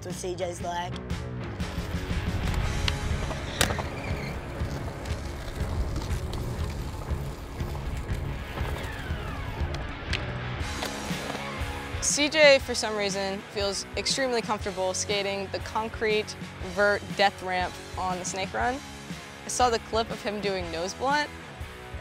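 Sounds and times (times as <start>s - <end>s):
background music: 0.0s - 22.0s
skateboard wheels rolling on concrete: 1.6s - 13.4s.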